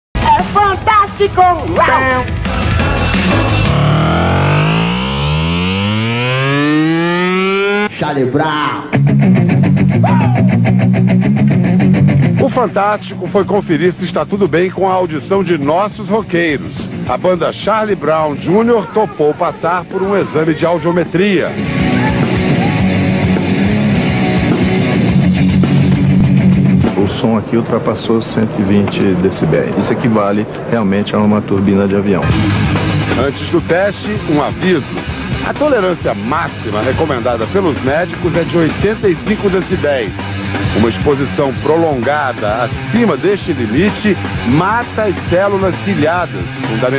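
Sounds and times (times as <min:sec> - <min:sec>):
drums: 0:00.2 - 0:08.0, 0:08.6 - 0:46.9
distorted electric guitars: 0:00.2 - 0:46.9
siren-like tone rising in pitch: 0:01.8 - 0:08.0.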